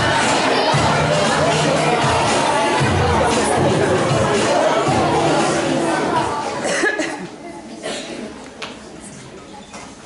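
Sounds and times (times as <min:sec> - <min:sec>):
playback music: 0:00.0 - 0:06.6
murmur of children: 0:00.0 - 0:10.0
short coughs: 0:06.6 - 0:08.3.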